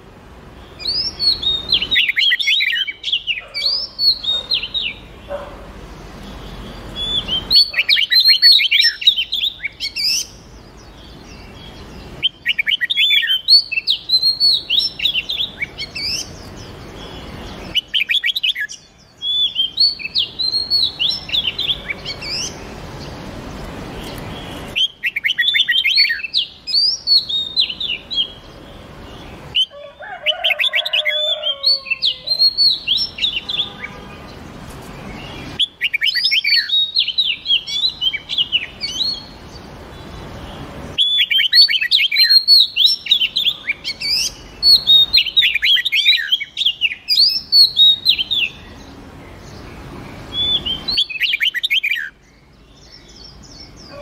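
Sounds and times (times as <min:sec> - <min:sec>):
birds singing whistled phrases: 0:00.0 - 0:54.0.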